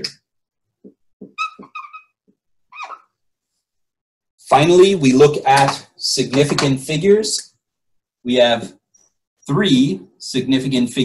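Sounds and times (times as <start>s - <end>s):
marker squeaking on whiteboard: 0.8s - 3.2s.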